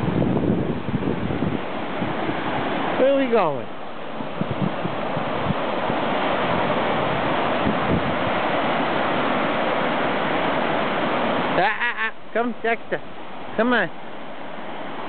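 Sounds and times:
waves washing up beach: 0.0 - 15.0.

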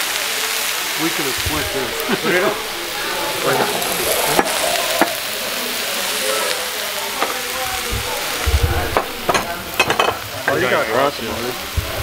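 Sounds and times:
meat sizzling on a skillet: 0.0 - 12.0.

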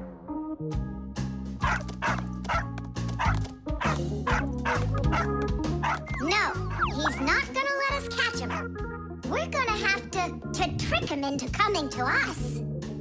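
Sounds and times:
background music: 0.0 - 13.0
cartoon dog yappy barks: 1.6 - 7.5, 8.3 - 8.7.

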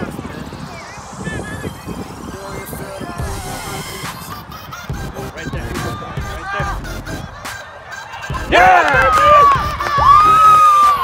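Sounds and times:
people shouting: 6.0 - 11.0.

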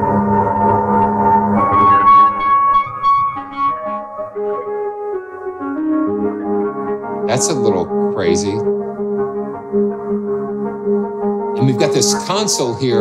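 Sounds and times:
ringing sampled piano notes: 0.0 - 13.0.

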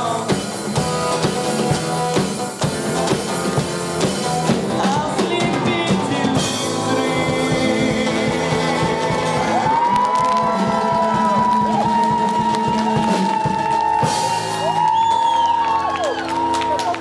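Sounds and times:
live rock band playing: 0.0 - 17.0
audience whooping: 8.6 - 17.0.

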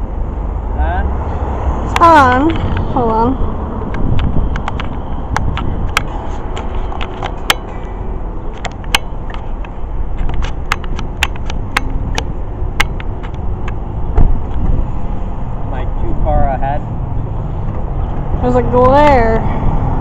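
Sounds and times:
low outdoor rumble: 0.0 - 20.0
sharp clicks and ticks: 1.9 - 13.8.

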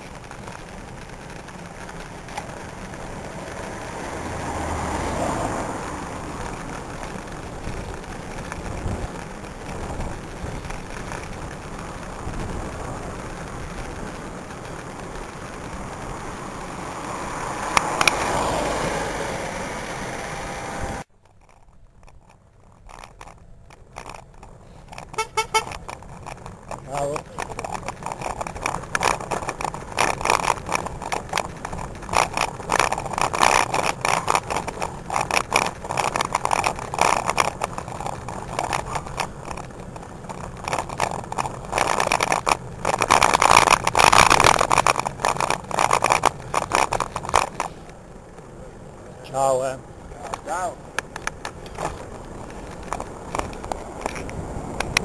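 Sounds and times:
wind buffeting microphone: 0.0 - 21.0, 49.8 - 55.0.

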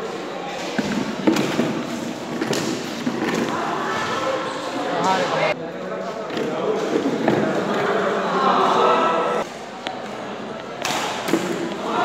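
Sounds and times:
spectators' voices echoing: 0.0 - 12.0.

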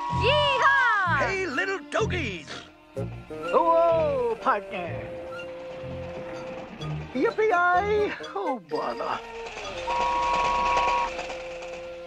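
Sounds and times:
toy train whistle: 0.0 - 0.9, 9.2 - 12.0
low sustained notes: 0.0 - 12.0
rapid rhythmic clatter: 3.5 - 12.0.

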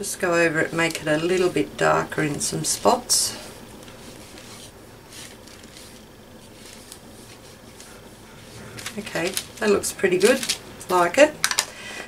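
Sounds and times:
ink pad scuffing on paper: 0.4 - 11.2.

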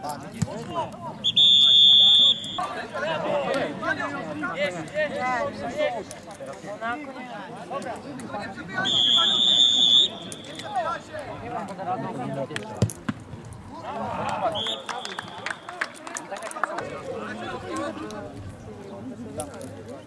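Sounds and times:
players and spectators shouting: 0.5 - 6.0, 8.3 - 12.4
referee's whistle blast: 1.2 - 2.7, 8.8 - 10.8.

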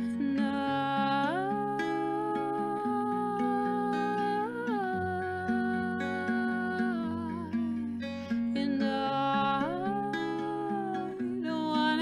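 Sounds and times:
acoustic guitar chords: 0.0 - 12.0
woman singing wordless note: 0.2 - 7.5.

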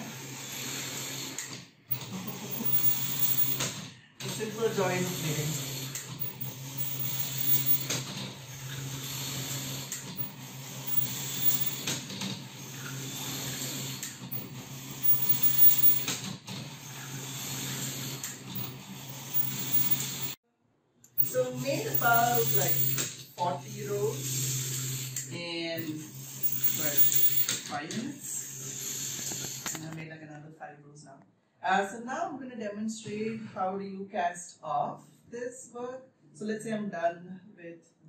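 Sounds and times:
knitting machine motor hum: 1.9 - 3.7, 6.2 - 7.9, 9.0 - 11.9, 12.8 - 16.1, 18.5 - 20.4
person speaking: 21.2 - 23.0.

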